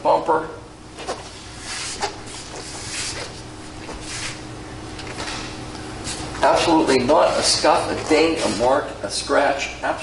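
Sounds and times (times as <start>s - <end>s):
low room tone hum: 0.0s - 10.0s
rustling and brushing noises: 1.0s - 4.5s.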